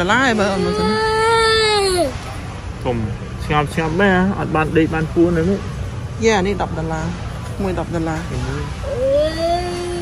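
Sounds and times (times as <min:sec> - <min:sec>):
young child crying: 0:00.6 - 0:02.2, 0:08.9 - 0:10.0.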